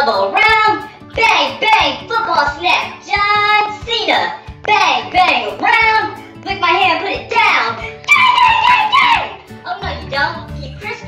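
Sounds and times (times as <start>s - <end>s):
backing music with low beat: 0.0s - 11.0s.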